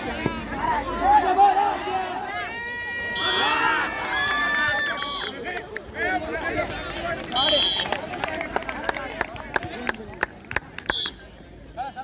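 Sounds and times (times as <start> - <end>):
players shouting: 0.2 - 9.8.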